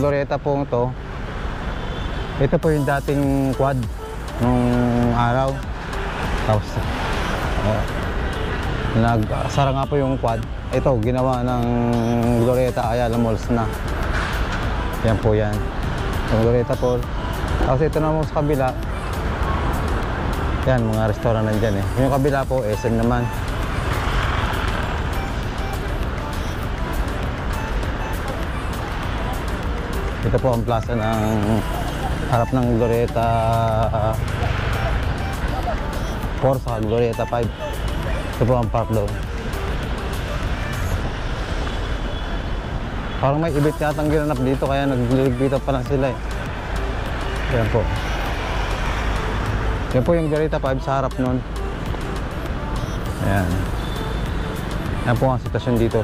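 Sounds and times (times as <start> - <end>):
road noise rumble: 0.0 - 56.0
car passing: 0.7 - 56.0.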